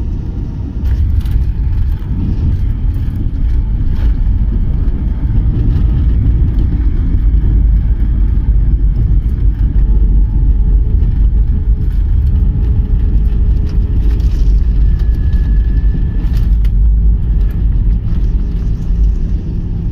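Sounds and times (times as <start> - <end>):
airliner wheels rumbling on runway: 0.0 - 19.9.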